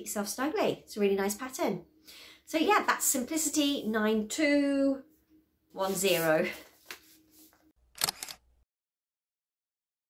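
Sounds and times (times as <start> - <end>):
sharp clicks: 8.0 - 8.4.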